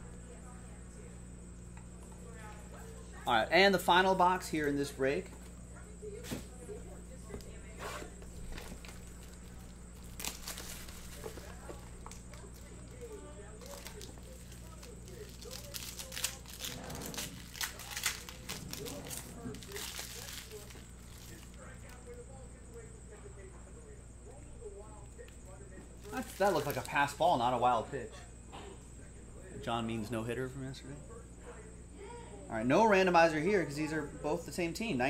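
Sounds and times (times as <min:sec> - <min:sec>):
faint steady hum: 0:00.0 - 0:35.0
foil wrappers crinkling and tearing: 0:08.3 - 0:22.2, 0:26.0 - 0:27.7.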